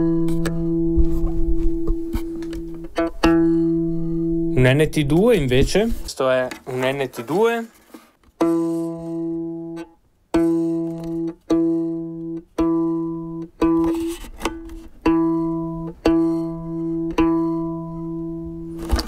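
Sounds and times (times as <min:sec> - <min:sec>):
violin pizzicato plucks: 0:00.0 - 0:04.6, 0:08.4 - 0:18.6.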